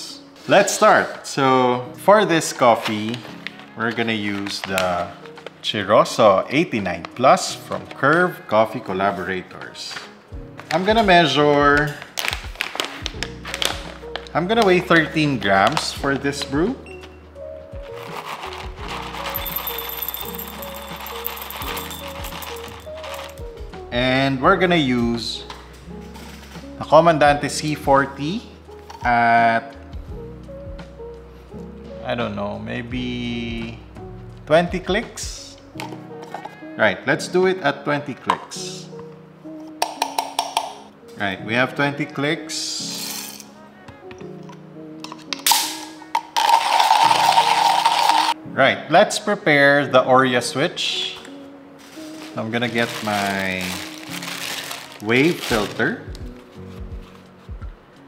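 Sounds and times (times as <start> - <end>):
background music: 0.0 - 58.0
coffee beans pouring into cup: 18.0 - 23.4, 45.5 - 48.4, 52.3 - 55.8.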